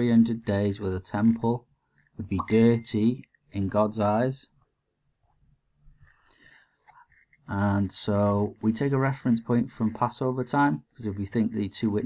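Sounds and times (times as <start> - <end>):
faint breath and mouth sounds: 5.2 - 11.6.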